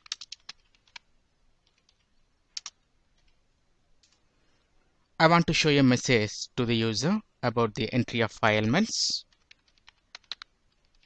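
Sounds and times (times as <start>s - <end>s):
computer keyboard typing: 0.0s - 3.4s, 9.2s - 11.0s.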